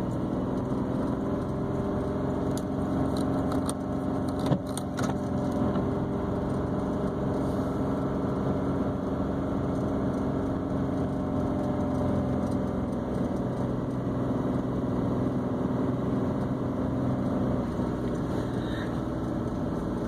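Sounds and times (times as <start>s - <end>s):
car engine and tyres humming: 0.0s - 20.0s.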